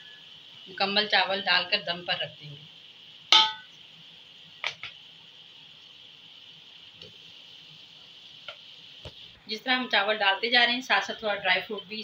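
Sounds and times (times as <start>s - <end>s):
faint high hiss: 0.0s - 12.0s.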